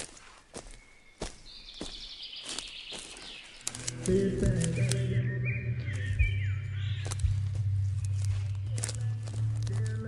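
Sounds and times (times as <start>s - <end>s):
footsteps: 0.0s - 5.0s, 7.0s - 10.0s
faint outdoor ambience: 0.0s - 10.0s.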